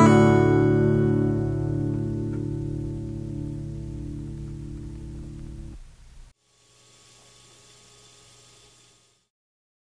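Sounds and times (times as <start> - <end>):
acoustic guitar chord ringing: 0.0 - 5.8
low steady hum: 0.0 - 9.2
faint tape hiss: 0.0 - 9.3.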